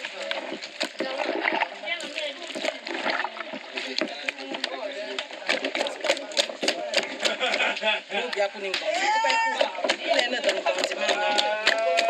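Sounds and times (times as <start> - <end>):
water splashing in a basin: 0.0 - 12.0.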